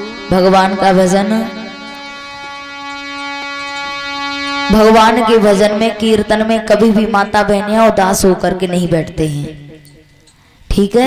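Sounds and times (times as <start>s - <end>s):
instrumental drone: 0.0s - 10.7s.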